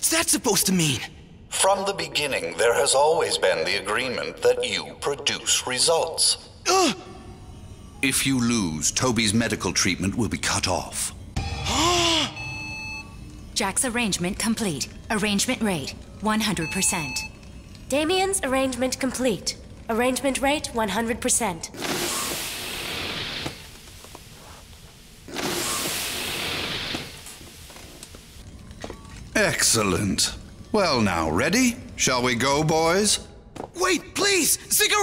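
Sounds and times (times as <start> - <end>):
low machine hum: 6.9 - 21.7
high electronic machine tones: 11.4 - 18.6
boy crying out: 11.6 - 12.4.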